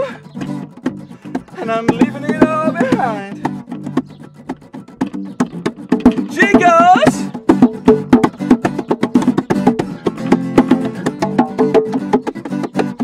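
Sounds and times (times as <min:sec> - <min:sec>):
acoustic bass: 0:00.0 - 0:13.0
acoustic guitar: 0:00.0 - 0:13.0
percussive taps: 0:00.3 - 0:13.0.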